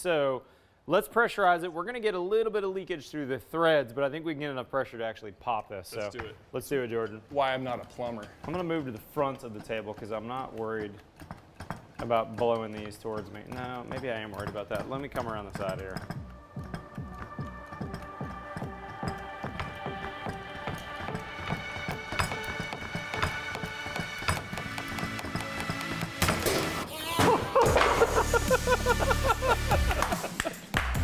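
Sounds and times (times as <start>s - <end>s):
background music with steady beat: 11.2s - 31.0s
men laughing and shouting: 27.1s - 30.7s.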